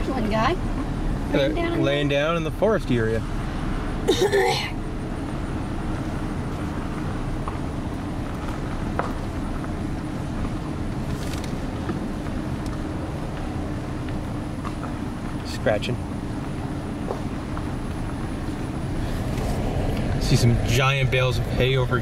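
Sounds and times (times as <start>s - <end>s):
engine and tyres rumbling: 0.0s - 22.0s.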